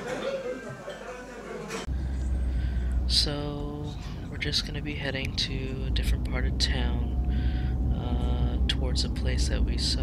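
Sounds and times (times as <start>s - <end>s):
restaurant background noise: 0.0s - 10.0s
road and engine rumble: 1.9s - 10.0s.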